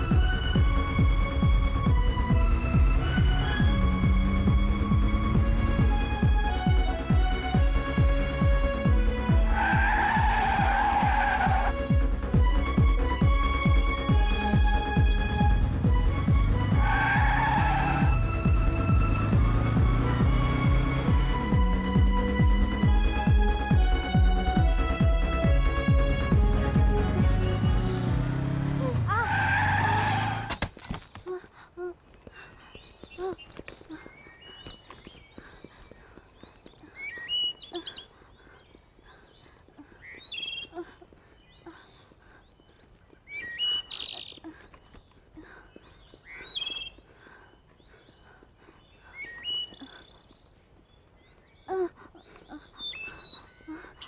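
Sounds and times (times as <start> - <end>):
motorcycle engine humming: 0.0 - 30.5
squealing tyre skid: 9.6 - 11.8, 16.7 - 18.3, 28.4 - 30.5
birds chirping and whistling: 27.4 - 28.6, 32.0 - 54.0.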